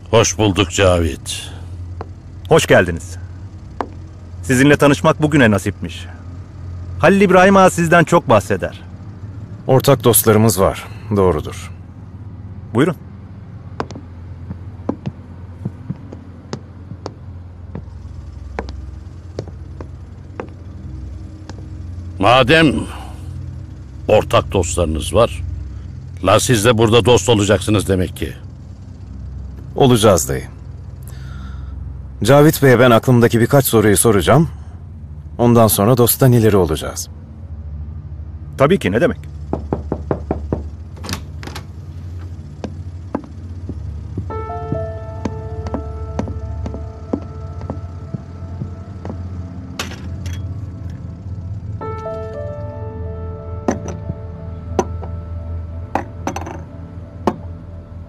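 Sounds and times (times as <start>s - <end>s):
steady low hum: 0.0s - 58.0s
dress shoes heel clicks on hardwood: 13.8s - 17.9s, 18.5s - 18.8s, 42.6s - 48.2s
light knocks: 13.8s - 17.9s.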